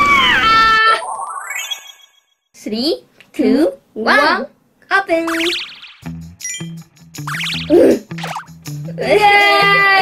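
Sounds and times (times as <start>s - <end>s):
bouncy cartoon music: 5.2s - 10.0s
excited voice: 8.8s - 10.0s.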